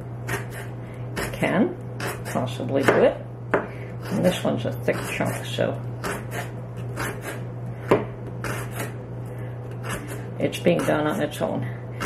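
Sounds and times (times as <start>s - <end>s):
knife slicing cabbage on a board: 0.3s - 1.4s, 6.0s - 9.0s.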